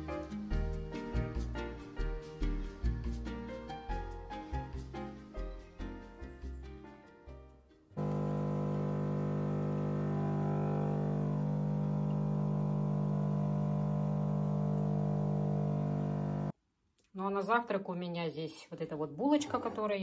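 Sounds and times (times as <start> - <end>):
coffee machine pump buzzing: 8.0 - 16.5.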